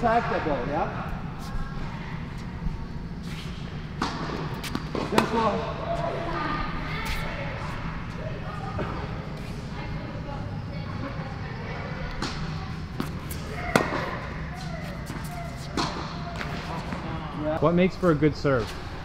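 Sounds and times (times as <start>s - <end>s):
voices chattering: 0.0s - 19.0s
tennis ball struck by rackets: 4.0s - 5.6s, 12.2s - 17.0s.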